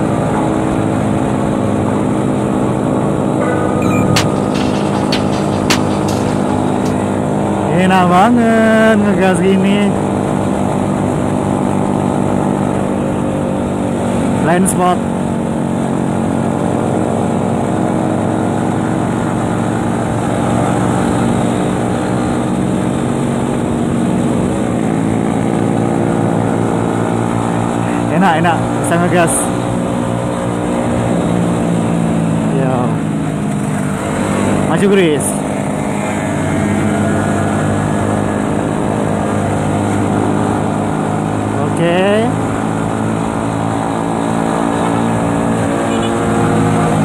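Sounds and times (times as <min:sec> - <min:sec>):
road noise: 0:00.0 - 0:47.0.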